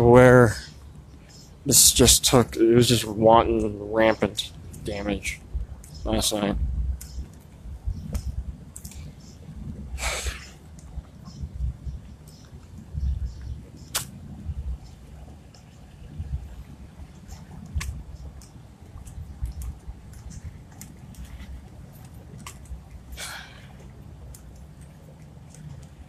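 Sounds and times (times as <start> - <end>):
sharp clicks: 12.2 - 14.2.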